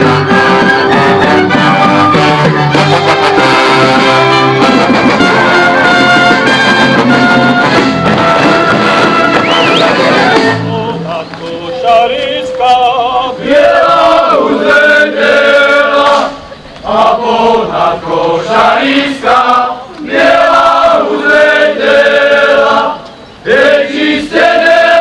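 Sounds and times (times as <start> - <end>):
male chorus singing folk song: 9.4 - 25.0.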